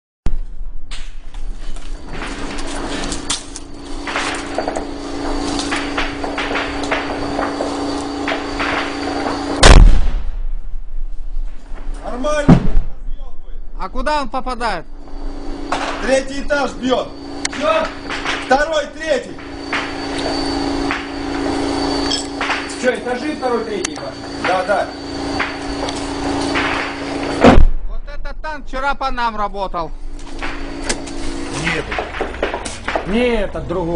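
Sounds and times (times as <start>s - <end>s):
steady hum: 0.3s - 33.9s
sharp cracks: 0.9s - 10.5s, 15.2s - 28.0s, 30.1s - 33.4s
tank gun firing blast: 4.0s - 10.8s, 12.3s - 13.1s, 24.3s - 28.1s, 30.4s - 33.4s.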